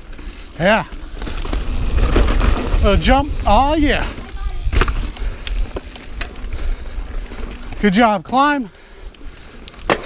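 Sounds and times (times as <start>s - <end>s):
bike tyres rolling on dirt: 0.0s - 10.0s
wind buffeting microphone: 1.0s - 7.8s.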